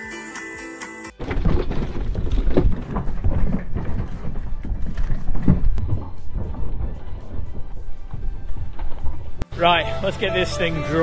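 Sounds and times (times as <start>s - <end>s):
sheep hooves clattering on wooden floor: 1.2s - 9.4s
wind rumble on microphone: 1.6s - 9.4s.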